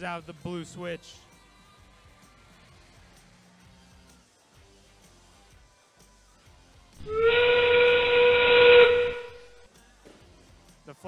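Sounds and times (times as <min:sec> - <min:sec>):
steam train whistle: 0:07.0 - 0:09.6.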